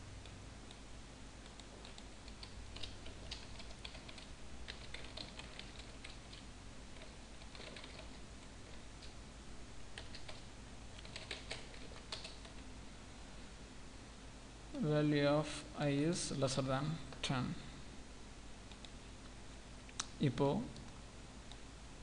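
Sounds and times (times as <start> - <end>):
keyboard typing: 1.4 - 9.2, 9.9 - 12.7.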